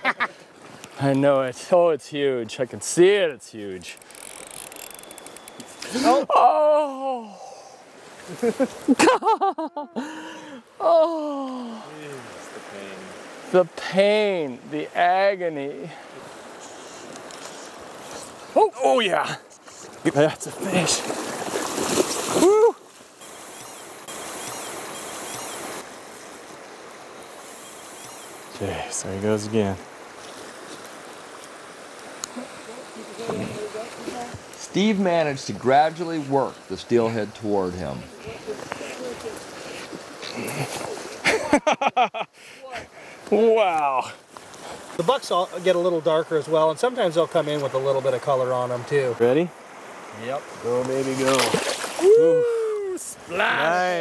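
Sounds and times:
fishing reel clicker buzzing: 0:04.0 - 0:05.8, 0:23.2 - 0:25.8, 0:27.4 - 0:28.5
river rushing: 0:10.2 - 0:41.3, 0:43.1 - 0:54.0
fish splashing at surface: 0:20.8 - 0:22.6, 0:51.1 - 0:52.0.

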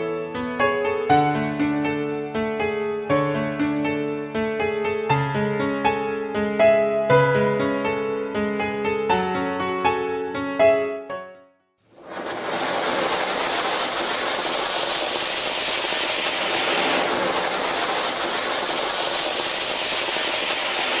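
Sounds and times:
firework fountain hissing: 0:11.9 - 0:21.0.

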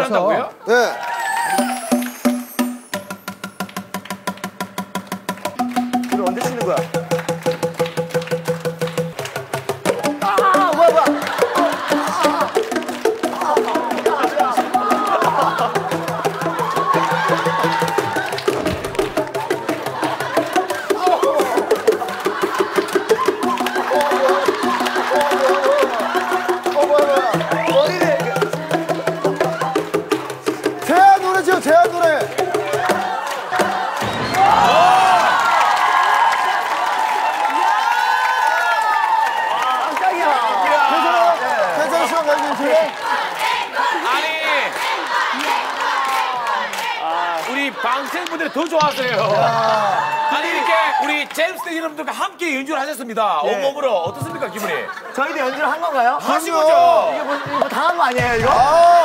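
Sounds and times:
tuned plastic tubes struck: 0:01.6 - 0:19.4
backing track with bass notes: 0:01.6 - 0:22.1.

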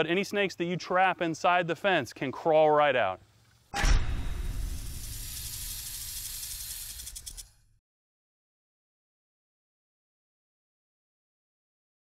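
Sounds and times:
snake hiss: 0:04.4 - 0:07.5.

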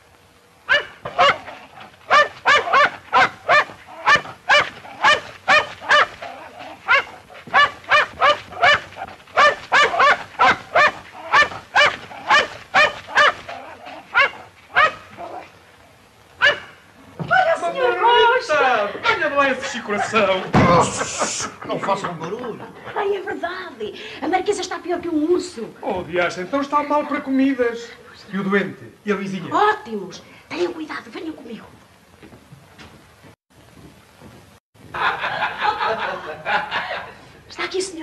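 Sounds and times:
dog barking: 0:00.7 - 0:15.5, 0:16.4 - 0:16.8.

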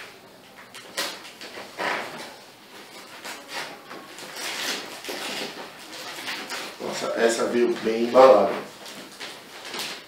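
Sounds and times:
packing tape and paper tearing: 0:00.7 - 0:10.0.

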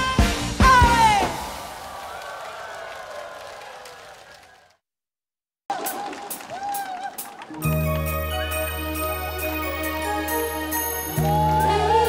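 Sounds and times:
live concert music: 0:00.0 - 0:01.6, 0:05.7 - 0:12.0
scattered clapping: 0:01.9 - 0:04.8, 0:05.7 - 0:07.8
crowd noise: 0:05.7 - 0:08.5
band playing song intro: 0:07.1 - 0:12.0.

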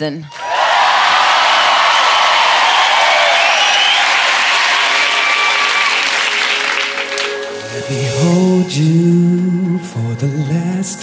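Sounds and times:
audience applauding: 0:00.3 - 0:07.9.

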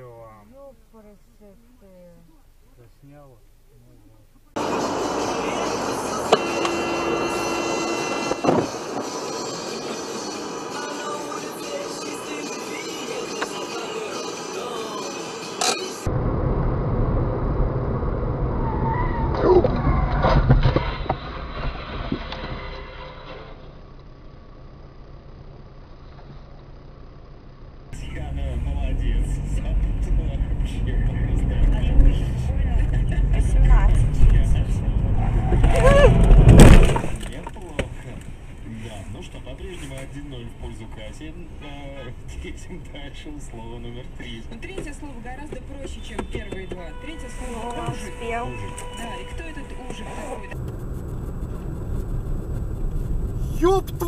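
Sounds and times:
voices in car: 0:00.0 - 0:16.1, 0:27.9 - 0:50.7, 0:52.9 - 0:54.0
car engine and road rumble: 0:00.0 - 0:54.0
music in car: 0:04.6 - 0:16.1, 0:44.6 - 0:50.6.

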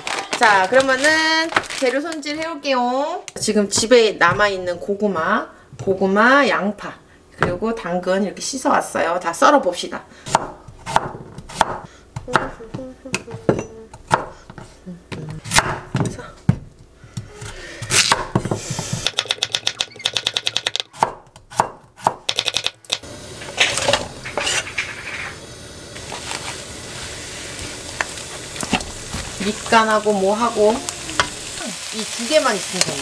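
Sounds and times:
knife chopping on wooden board: 0:10.3 - 0:12.6, 0:14.0 - 0:14.7, 0:17.2 - 0:22.6
onions frying in a pan: 0:22.9 - 0:33.0.

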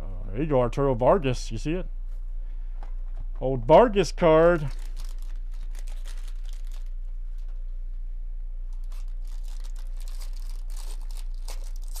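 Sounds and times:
steady low hum: 0:00.0 - 0:12.0
foil wrapper tearing and crinkling: 0:04.6 - 0:07.0, 0:08.7 - 0:12.0.

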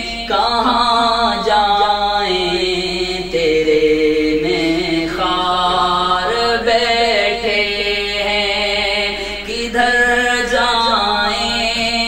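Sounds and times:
man singing solo: 0:00.0 - 0:03.4.

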